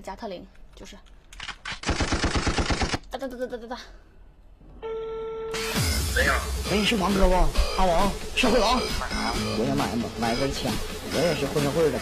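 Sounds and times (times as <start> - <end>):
machine-gun burst: 1.7 - 3.0.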